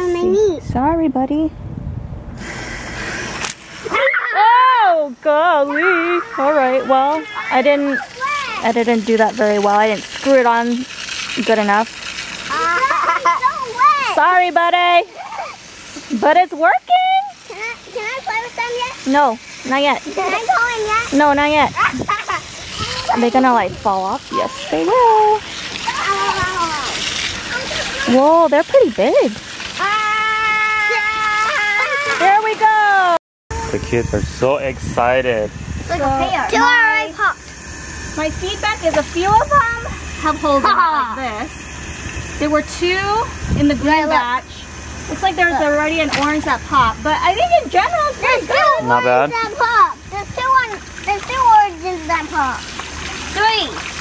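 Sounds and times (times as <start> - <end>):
garden hose spraying water: 2.3 - 54.0
child whining: 5.7 - 8.6, 15.1 - 15.6, 21.8 - 23.3, 25.9 - 28.1, 29.8 - 32.2.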